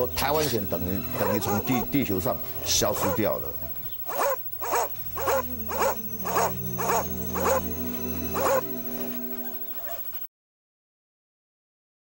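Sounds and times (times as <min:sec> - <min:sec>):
dog barking: 0:01.2 - 0:01.8, 0:02.9 - 0:03.3, 0:04.1 - 0:07.7, 0:08.3 - 0:10.2.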